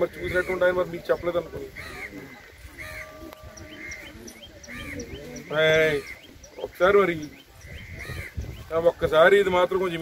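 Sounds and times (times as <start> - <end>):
bird chirping: 0.0 - 9.0
murmur of crowd voices: 0.0 - 10.0.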